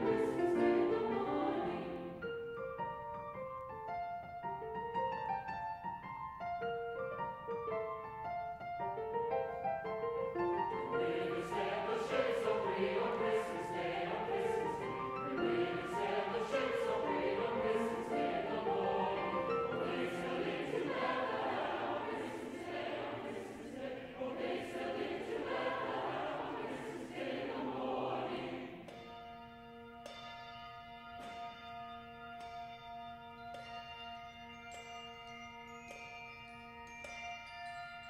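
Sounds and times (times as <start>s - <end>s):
mixed choir singing: 0.0s - 2.2s, 10.4s - 29.0s
tubular chimes ringing: 27.4s - 38.0s.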